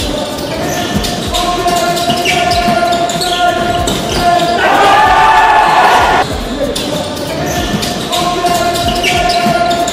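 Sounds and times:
voices talking: 0.0 - 9.9.

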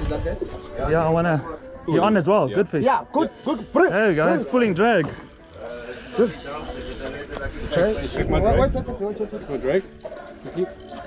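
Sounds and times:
men's voices: 0.0 - 11.0.

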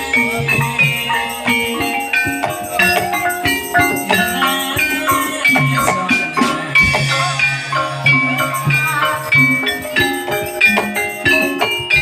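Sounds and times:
drum strokes: 0.0 - 12.0
struck metallophone notes: 0.0 - 12.0.

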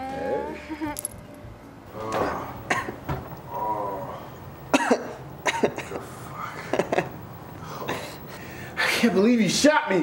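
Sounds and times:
man coughing and gasping: 2.1 - 3.0, 4.7 - 6.7.

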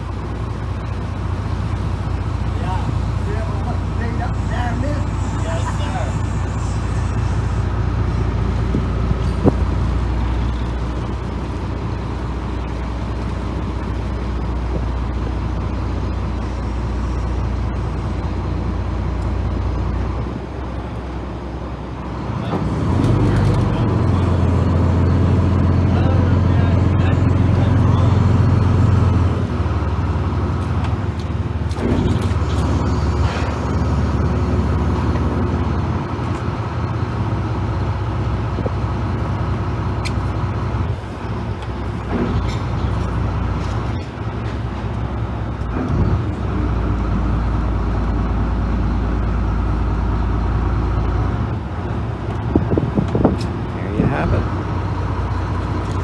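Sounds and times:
diesel boat engine rumbling: 0.0 - 56.0.

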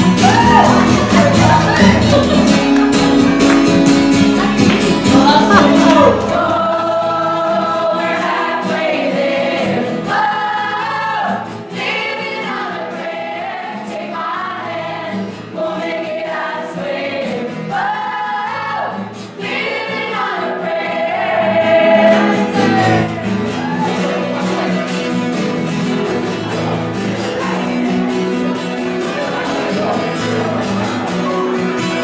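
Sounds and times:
women's choir singing: 4.2 - 25.0.

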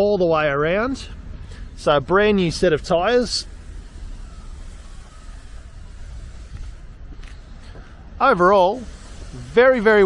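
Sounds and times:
road traffic hiss: 0.0 - 10.0
wind rumble on microphone: 1.0 - 8.2.

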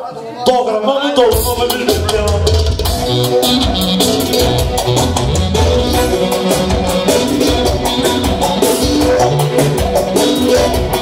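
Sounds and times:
lively dance music from a band: 0.5 - 11.0.

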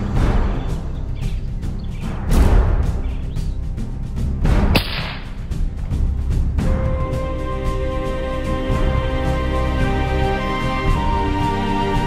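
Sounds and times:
background music: 0.0 - 12.0
rifle shot: 4.7 - 5.4.

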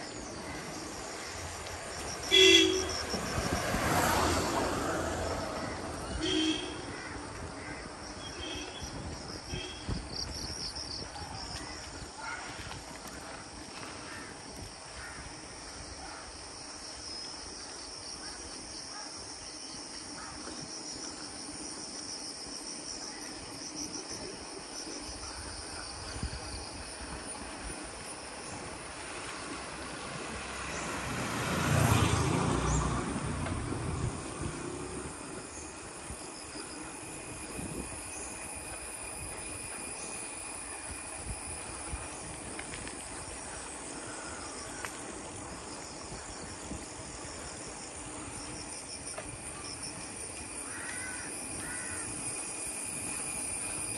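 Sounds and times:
insects chirring: 0.0 - 30.8, 31.6 - 53.9
vehicle passing: 1.2 - 6.9, 29.5 - 35.5.

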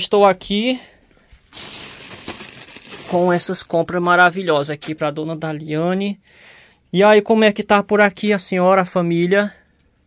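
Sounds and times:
plastic bags rustling: 1.4 - 4.0.

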